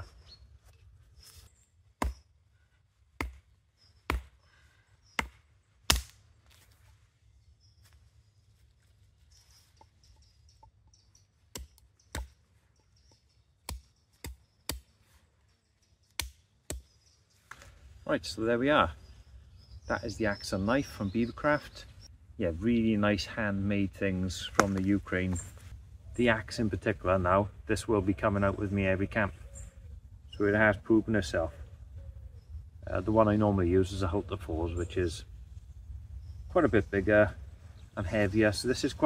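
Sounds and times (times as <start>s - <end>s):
hatchet striking wooden stake: 2.0s - 2.3s, 3.2s - 4.4s, 5.1s - 6.2s, 11.5s - 12.4s, 13.1s - 14.9s, 16.2s - 17.0s, 24.5s - 24.9s.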